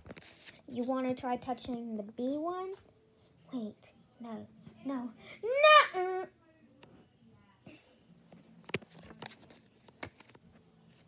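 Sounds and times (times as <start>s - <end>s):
fingers tapping and rustling paper: 8.6s - 11.0s.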